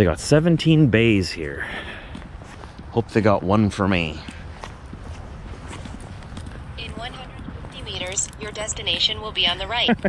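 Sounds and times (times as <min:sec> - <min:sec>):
steady low rumble: 0:00.0 - 0:10.0
footsteps on pavement: 0:00.4 - 0:10.0.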